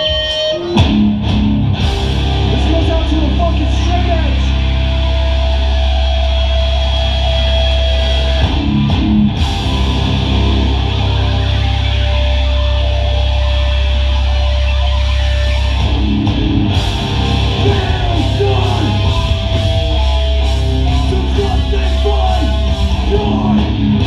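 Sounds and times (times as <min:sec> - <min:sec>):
distorted guitars and bass chords: 0:00.0 - 0:24.0.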